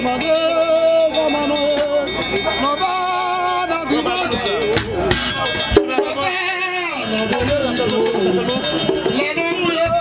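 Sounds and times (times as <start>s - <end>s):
person singing with vibrato: 0.0s - 4.7s, 5.6s - 10.0s.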